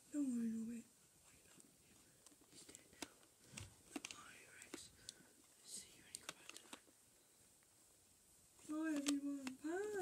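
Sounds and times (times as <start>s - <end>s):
faint whisper: 0.0s - 6.9s
soft clicks and rustles: 1.3s - 7.8s, 8.5s - 10.0s.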